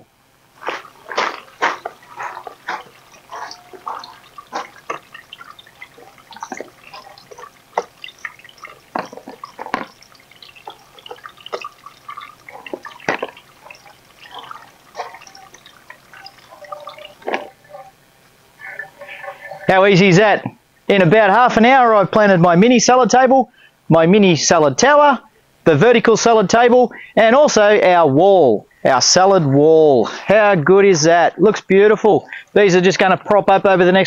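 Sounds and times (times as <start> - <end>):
water dripping: 0.5 - 19.9.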